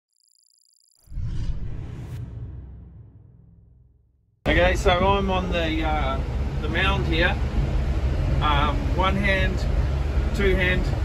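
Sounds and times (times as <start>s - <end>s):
low rumbling whoosh: 1.1s - 11.0s.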